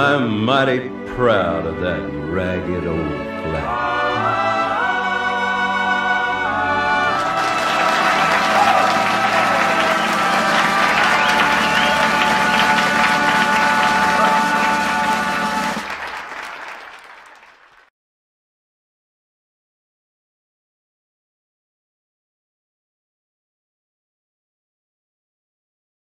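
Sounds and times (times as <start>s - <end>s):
brass music: 0.0s - 17.3s
audience applauding: 7.1s - 17.9s
voices: 7.3s - 16.5s.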